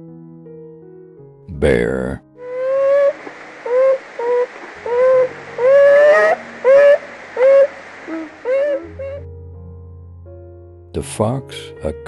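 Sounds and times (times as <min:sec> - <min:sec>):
bear whining calls: 0:02.4 - 0:09.2.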